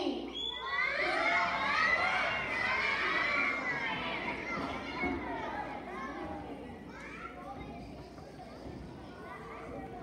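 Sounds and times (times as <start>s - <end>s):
young children talking and calling: 0.0s - 10.0s.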